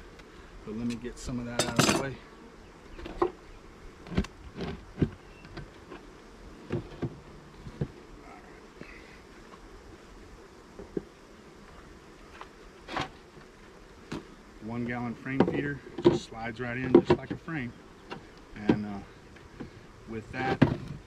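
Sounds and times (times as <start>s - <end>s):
honeybees buzzing: 0.0s - 21.0s
knocks on wooden hive box: 15.3s - 17.5s, 18.6s - 18.9s, 20.4s - 21.0s.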